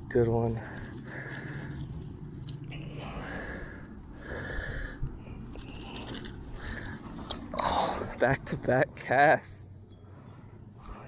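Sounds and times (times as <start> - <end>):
man breathing: 0.6 - 7.5, 10.0 - 11.0.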